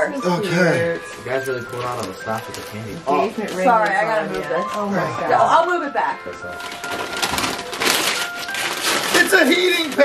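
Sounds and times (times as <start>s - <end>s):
wrapping paper crinkling and tearing: 0.6s - 5.6s, 6.3s - 10.0s.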